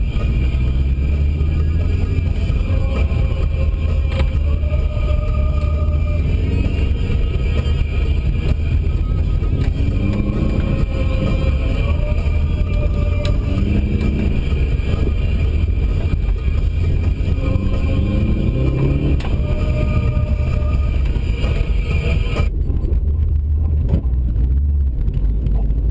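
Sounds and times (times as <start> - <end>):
car engine revving: 0.0 - 25.9
low engine rumble: 0.0 - 25.9.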